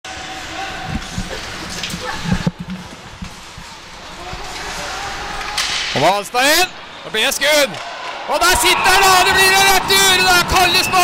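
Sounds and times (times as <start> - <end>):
arena noise and voices: 0.1 - 11.0.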